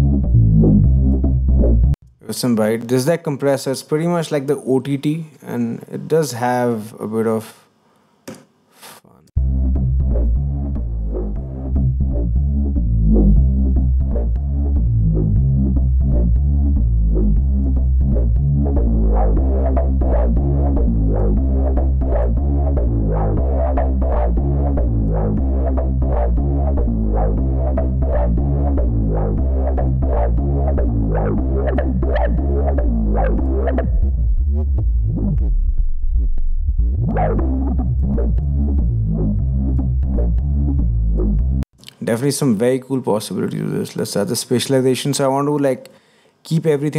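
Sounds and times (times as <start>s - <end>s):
synth bass line: 0.0s - 2.0s, 9.4s - 41.6s.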